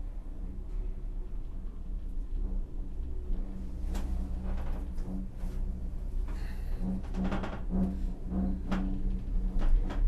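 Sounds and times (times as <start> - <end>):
cable car rumble and hum: 0.0 - 10.0.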